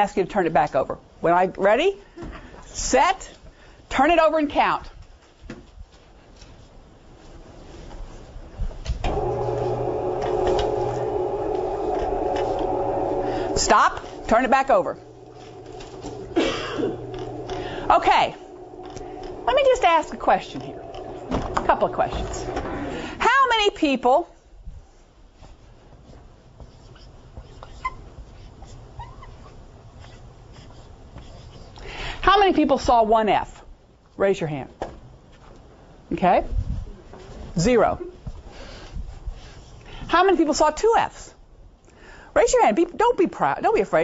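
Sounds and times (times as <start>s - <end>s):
steady multi-tone hum: 9.0s - 23.8s
low steady rumble: 9.1s - 23.6s.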